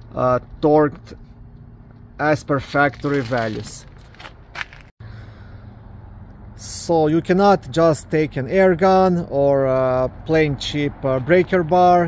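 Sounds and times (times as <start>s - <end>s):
outdoor background noise: 0.0s - 12.0s.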